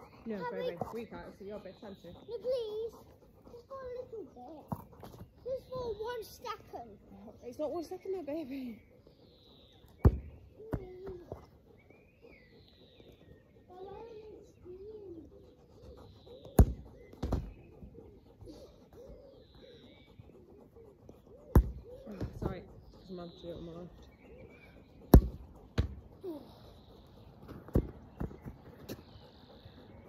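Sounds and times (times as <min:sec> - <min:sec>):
birds chirping: 0:00.0 - 0:30.0
ball thumping: 0:25.1 - 0:26.0, 0:27.5 - 0:28.4.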